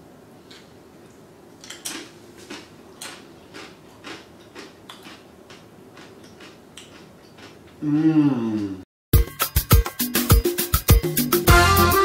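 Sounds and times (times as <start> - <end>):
person chewing crunchy food: 1.6 - 7.9.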